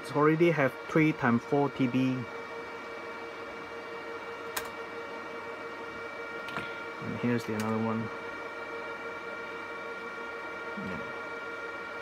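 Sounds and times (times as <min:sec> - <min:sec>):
server cooling fans whirring: 0:00.0 - 0:12.0.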